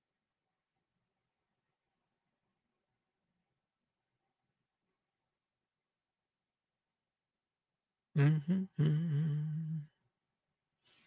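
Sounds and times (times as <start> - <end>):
man humming: 8.2 - 9.9.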